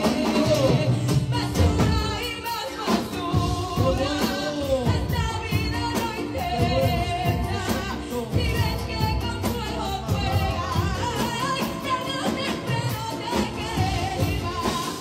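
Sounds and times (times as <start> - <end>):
instrumental backing: 0.0 - 15.0
women singing into microphones: 0.0 - 15.0.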